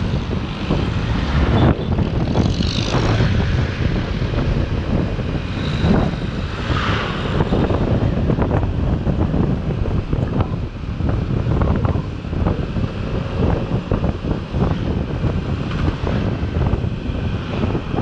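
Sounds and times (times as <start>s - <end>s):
road noise: 0.0s - 18.0s
wind rush on microphone: 0.0s - 18.0s.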